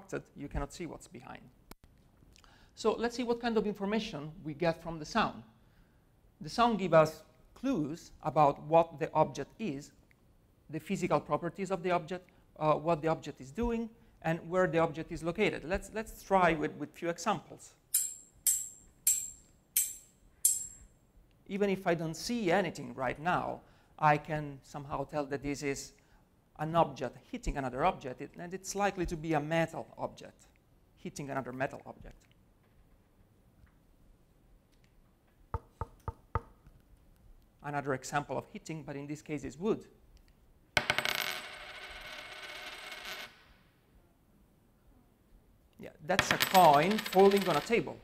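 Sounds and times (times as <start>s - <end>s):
metal striking metal: 17.9s - 20.9s
coin falling on wooden table: 18.0s - 20.8s, 40.8s - 43.6s, 46.2s - 47.8s.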